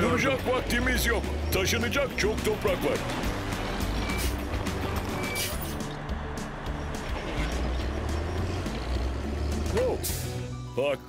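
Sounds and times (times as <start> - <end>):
construction machine engine rumble: 0.0 - 10.7.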